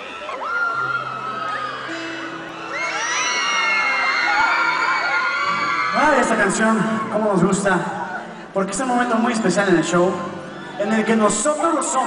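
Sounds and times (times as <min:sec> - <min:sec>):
audience screaming and cheering: 0:00.0 - 0:12.0.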